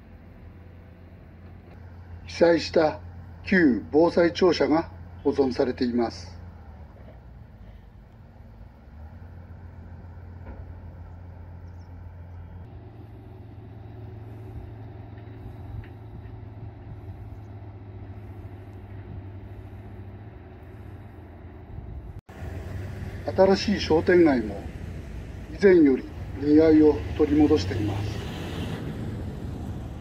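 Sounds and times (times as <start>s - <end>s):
low outdoor rumble: 0.0s - 30.0s.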